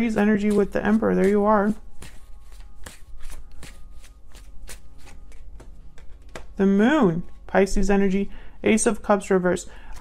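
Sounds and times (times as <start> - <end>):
cards being shuffled: 0.2 - 6.6.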